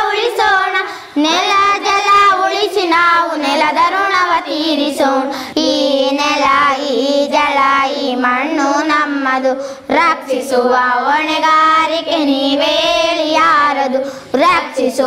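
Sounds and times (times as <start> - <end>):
boys singing together: 0.0 - 15.0.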